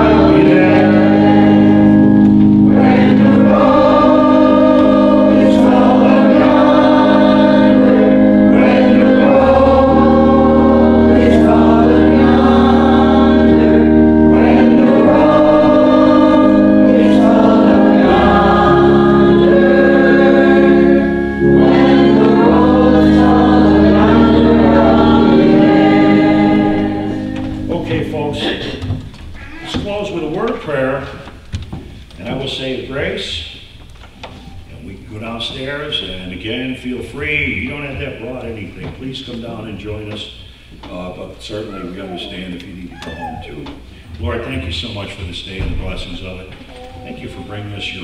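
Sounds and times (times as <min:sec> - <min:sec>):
sustained accompaniment chords: 0:00.0 - 0:29.0
congregation singing a hymn: 0:00.0 - 0:29.1.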